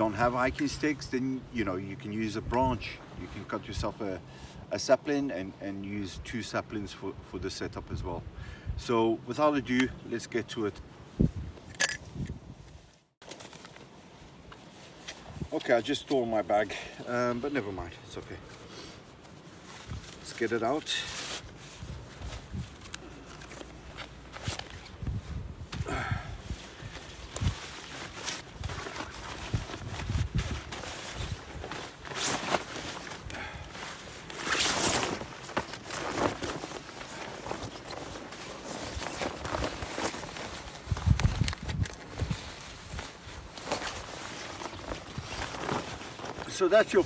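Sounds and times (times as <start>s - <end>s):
waterproof fabric rustling: 12.5s - 47.0s.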